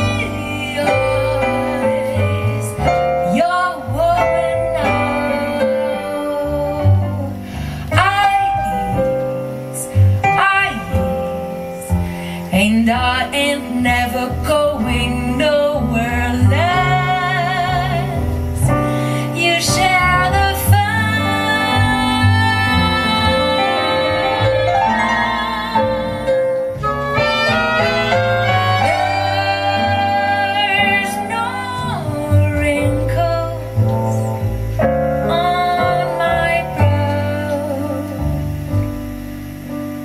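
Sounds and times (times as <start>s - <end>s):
woman singing into microphone: 0.0s - 38.5s
quick melodic jazz line: 0.0s - 40.0s
upright double bass: 0.0s - 40.0s
electric keyboard: 14.5s - 40.0s.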